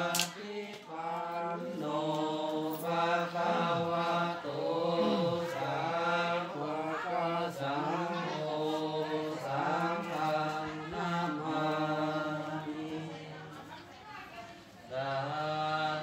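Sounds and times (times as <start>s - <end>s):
monks chanting in unison: 0.0s - 13.7s, 14.9s - 16.0s.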